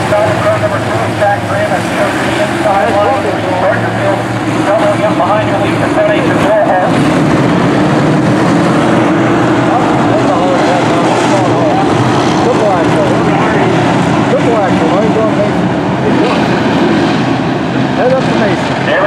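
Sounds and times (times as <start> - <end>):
race car engines roaring: 0.0 - 19.0.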